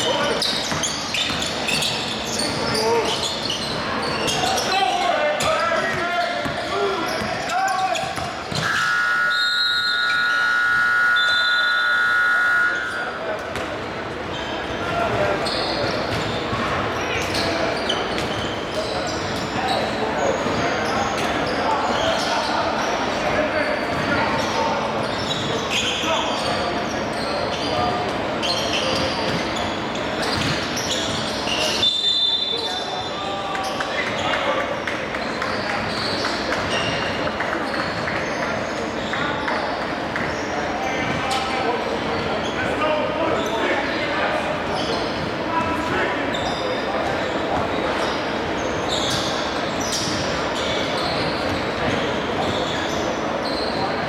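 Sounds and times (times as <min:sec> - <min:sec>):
players' voices: 0:00.0 - 0:54.0
electronic scoreboard horn: 0:08.7 - 0:13.0.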